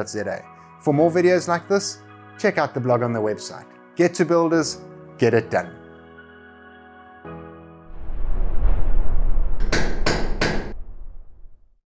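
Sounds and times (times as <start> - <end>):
low rumble: 7.9 - 11.8
sharp hammer-like strikes: 9.6 - 10.8.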